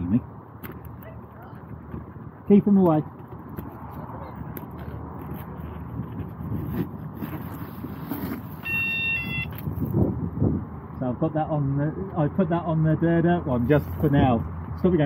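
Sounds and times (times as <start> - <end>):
handling noise: 0.6 - 10.0.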